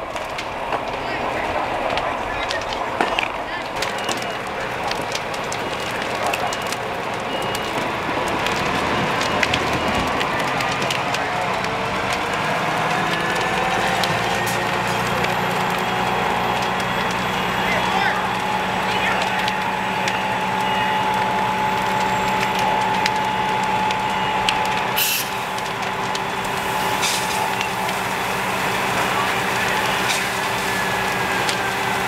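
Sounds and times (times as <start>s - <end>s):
fire crackling and snapping: 0.0s - 32.0s
engine whine and hum: 6.5s - 32.0s
background voices: 10.0s - 32.0s.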